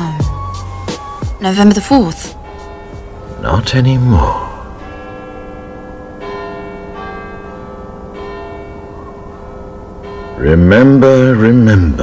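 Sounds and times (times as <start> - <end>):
large bell tolling: 1.4 - 12.0.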